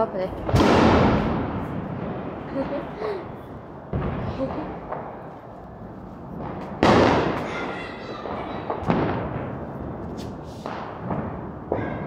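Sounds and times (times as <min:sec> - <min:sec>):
firecracker bangs: 0:00.3 - 0:05.4, 0:06.3 - 0:12.0
distant firecracker pops: 0:00.4 - 0:05.3, 0:06.3 - 0:12.0.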